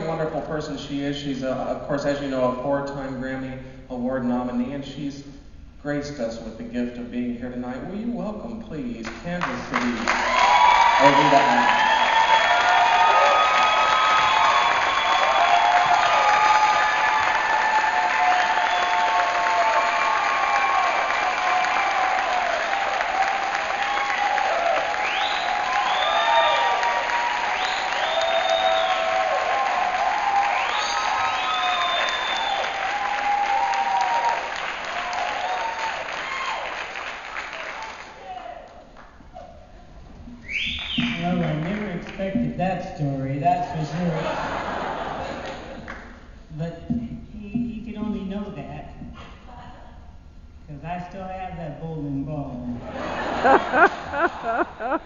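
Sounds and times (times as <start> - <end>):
audience applauding: 9.0 - 39.2, 40.5 - 42.2, 53.2 - 55.0
audience cheering and whooping: 10.0 - 38.8, 52.9 - 55.0.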